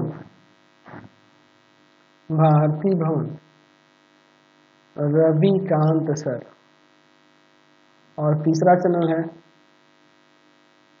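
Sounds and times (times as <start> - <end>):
electrical mains hum: 0.0 - 11.0
spoken word: 8.2 - 9.3.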